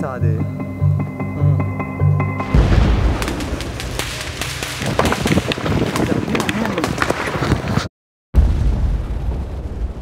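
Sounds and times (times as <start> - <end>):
low explosion rumble: 2.5 - 7.1, 8.4 - 10.0
sharp cracks: 2.5 - 7.8.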